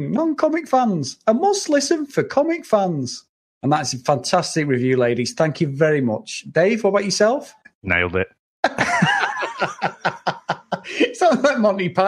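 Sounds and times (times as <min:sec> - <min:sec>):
men laughing: 0:08.6 - 0:11.6.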